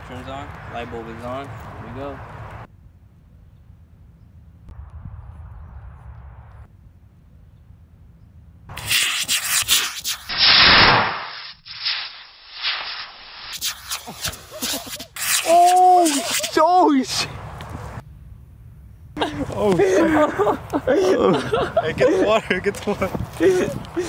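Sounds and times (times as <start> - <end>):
wind rumble on microphone: 2.6 - 8.3, 21.8 - 24.0
rocket motor crackling: 8.7 - 16.6
rocket motor rushing hiss: 8.7 - 16.6.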